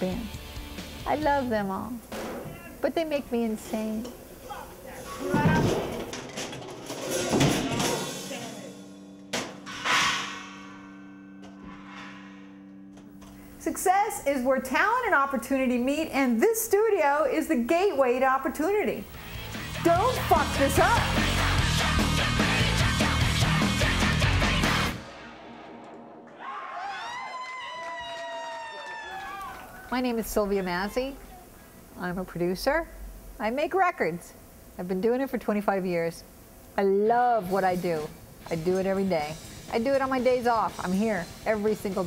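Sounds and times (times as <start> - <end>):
low electrical hum: 0.0 - 9.4, 12.6 - 21.1, 26.8 - 42.0
metallic clang: 5.4 - 13.6
people yelling and whooping: 26.4 - 29.9.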